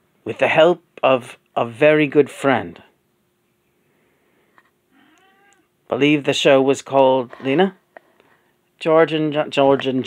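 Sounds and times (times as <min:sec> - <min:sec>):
faint high-pitched cry: 0:05.0 - 0:05.7.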